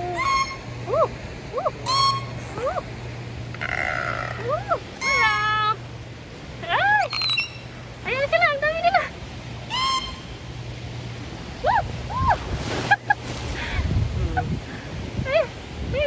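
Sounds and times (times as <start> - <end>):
gull calling: 0.0 - 5.9, 6.7 - 7.8, 9.6 - 10.4
low steady hum: 0.0 - 16.0.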